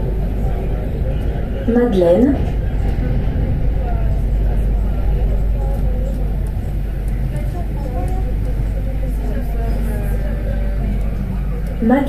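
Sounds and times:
faint voices: 0.0 - 12.0
train rumbling in tunnel: 0.0 - 12.0.

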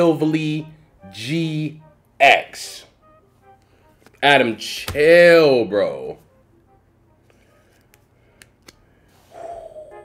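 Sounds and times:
plastic card holders clicking together: 7.8 - 8.8.

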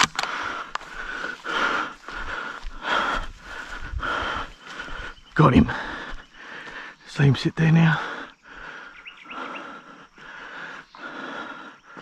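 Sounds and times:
man breathing hard: 0.0 - 7.1, 7.8 - 12.0.

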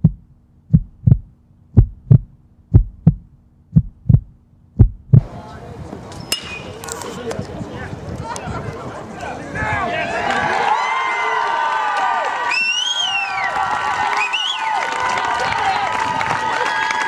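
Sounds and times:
heartbeat thumps: 0.0 - 5.3
crowd voices: 5.2 - 11.4
metal bat hitting ball: 6.3 - 6.7.

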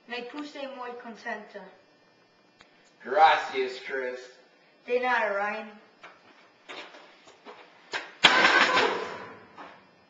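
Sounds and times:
crash against metal lockers: 8.2 - 9.4.

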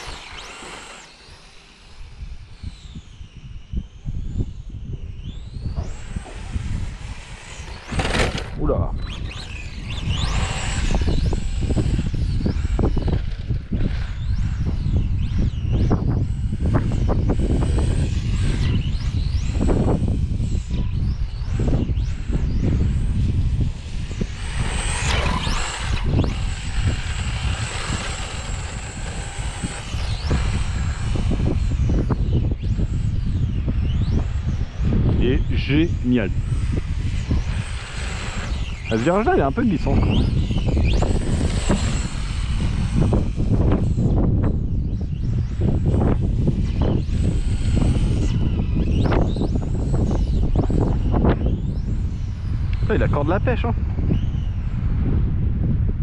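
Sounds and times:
rc car electric motor whining: 0.0 - 55.8
wind rumble on microphone: 0.0 - 56.0.

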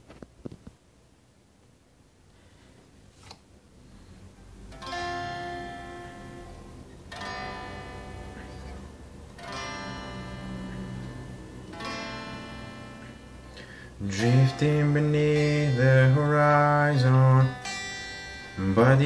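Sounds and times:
clean electric guitar chords: 4.7 - 19.0.

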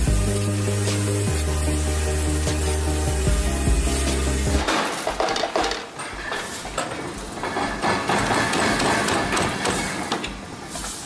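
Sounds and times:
vibrating screen metallic clatter: 0.0 - 9.7.

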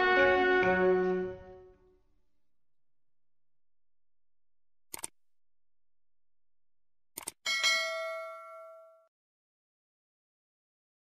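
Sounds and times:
notification bell chime: 7.5 - 9.0.

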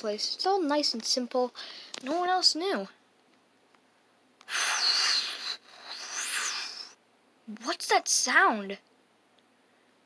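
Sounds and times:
breathy hiss with whistling tone: 4.4 - 7.0.

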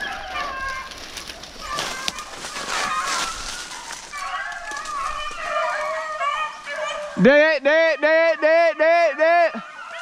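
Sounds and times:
dogs baying: 0.0 - 7.2
footsteps crunching through dry leaves: 0.0 - 7.2.

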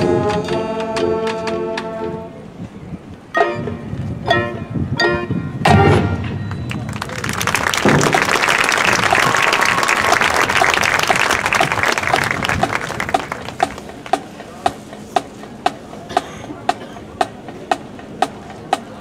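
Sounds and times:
crowd applauding and cheering: 6.5 - 13.8.

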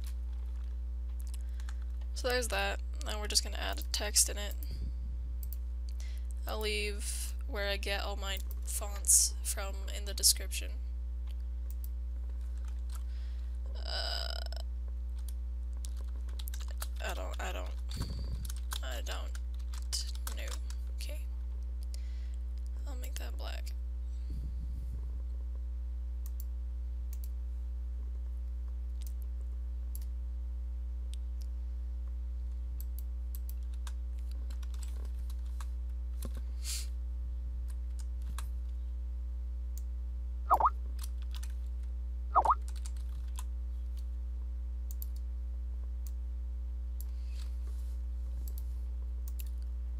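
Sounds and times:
steady low hum: 0.0 - 49.9.

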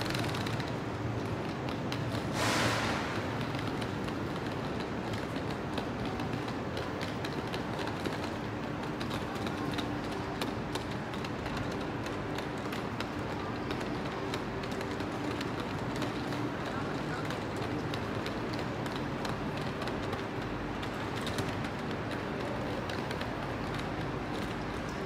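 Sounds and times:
small clicks and rattles: 0.0 - 2.2
passenger train rumble: 0.0 - 25.0.

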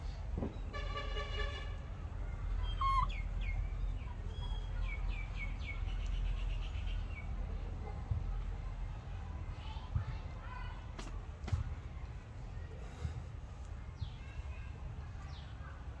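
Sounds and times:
songbird chirping: 2.2 - 7.4.

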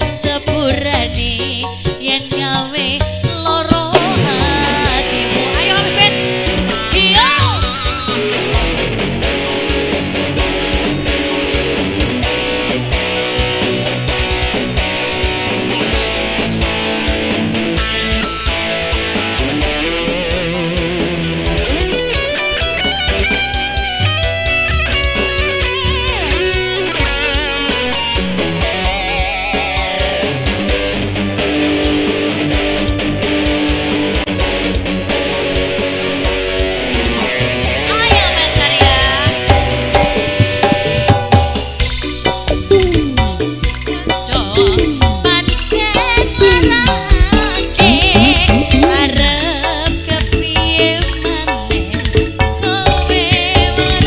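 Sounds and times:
electric guitar lead: 0.0 - 54.0
steady drum beat: 0.0 - 54.0.

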